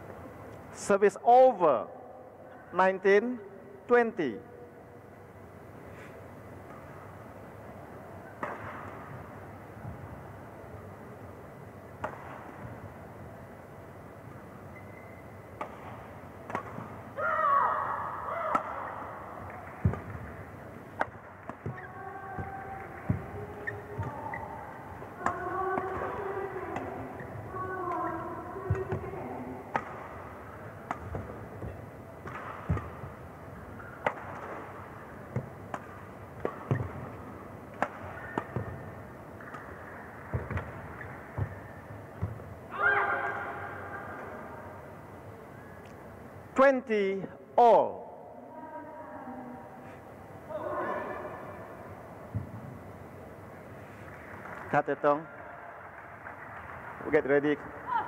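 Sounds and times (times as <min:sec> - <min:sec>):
rackets striking shuttlecock: 0:07.8 - 0:10.3, 0:11.8 - 0:13.0, 0:14.7 - 0:17.2, 0:18.2 - 0:42.6
player shouting: 0:42.7 - 0:43.7.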